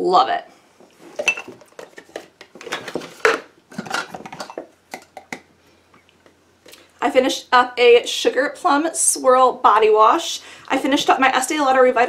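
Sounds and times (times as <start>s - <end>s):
containers clinking together: 1.2s - 5.4s.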